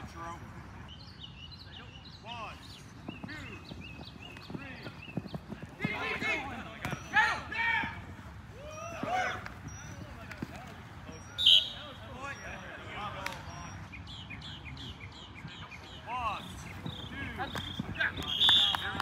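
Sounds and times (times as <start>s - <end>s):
birds chirping: 0.0s - 19.0s
players calling out: 0.0s - 19.0s.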